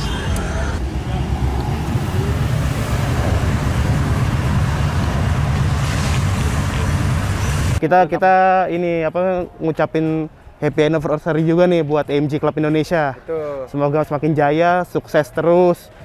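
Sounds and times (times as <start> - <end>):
car engine rumbling: 0.0 - 7.8
street traffic: 0.0 - 7.8, 9.4 - 16.0.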